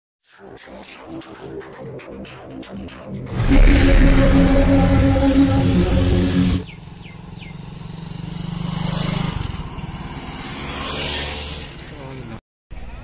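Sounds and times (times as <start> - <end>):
intro music: 0.2 - 6.6
motorcycle engines passing: 3.4 - 12.4.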